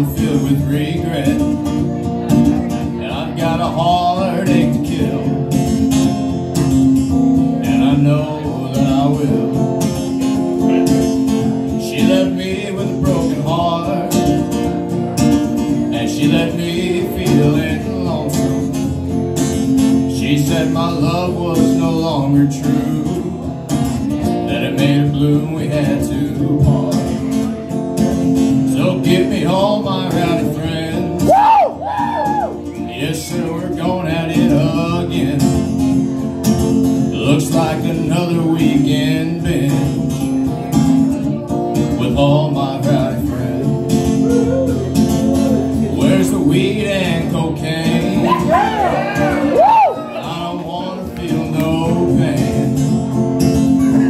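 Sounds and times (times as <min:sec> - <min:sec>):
acoustic guitar strumming: 0:00.0 - 0:54.0
man singing: 0:00.0 - 0:54.0.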